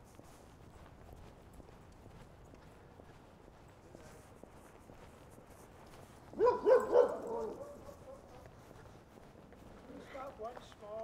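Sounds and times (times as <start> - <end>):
small dog barking: 6.4 - 8.4.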